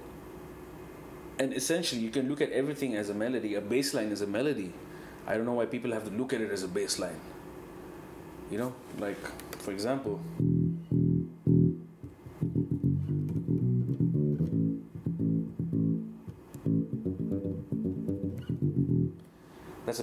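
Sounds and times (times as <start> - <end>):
electric bass played fingerstyle: 10.4 - 19.3.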